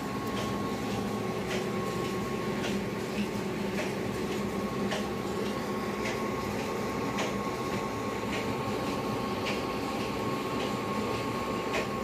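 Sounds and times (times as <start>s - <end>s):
mechanical drone with high hum: 0.0s - 12.0s.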